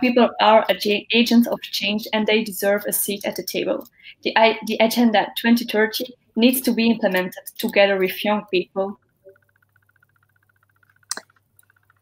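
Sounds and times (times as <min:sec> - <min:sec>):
rapidly pulsing high tone: 0:08.1 - 0:12.0.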